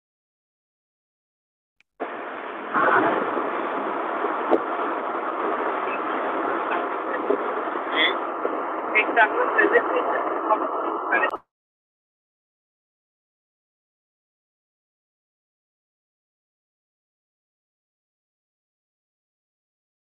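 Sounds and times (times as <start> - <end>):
microphone background noise: 2.0 - 11.4.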